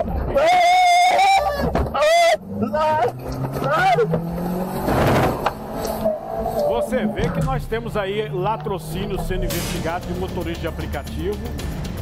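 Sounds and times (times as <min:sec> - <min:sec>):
car engine revving: 0:01.6 - 0:12.0.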